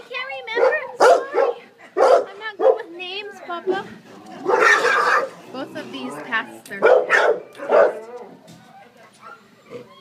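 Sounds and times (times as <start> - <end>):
dogs barking and whining: 0.3 - 10.0.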